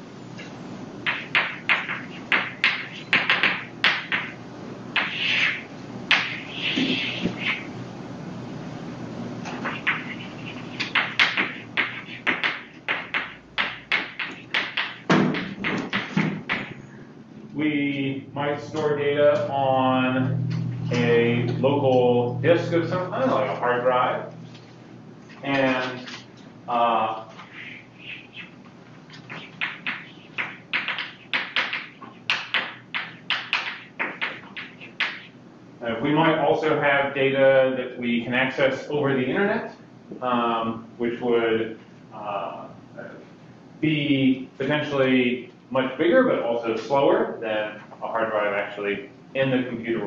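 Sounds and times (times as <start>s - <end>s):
chalk writing on blackboard: 5.0s - 7.7s, 9.5s - 15.0s, 29.1s - 35.2s.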